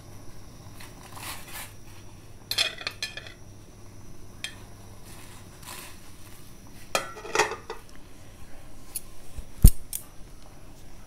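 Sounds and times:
plate clinking against pot: 7.0 - 7.8.

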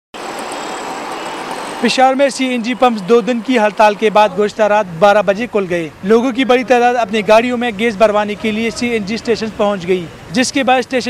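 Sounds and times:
road traffic noise: 0.1 - 11.0
man talking: 1.8 - 11.0.

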